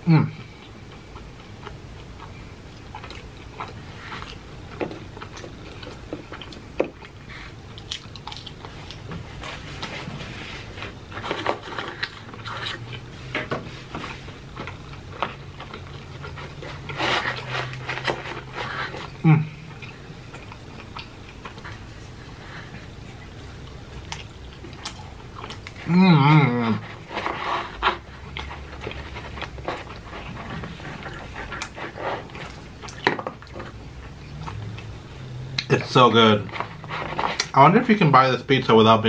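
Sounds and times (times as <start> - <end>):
person chewing pizza crust: 0.0 - 39.0.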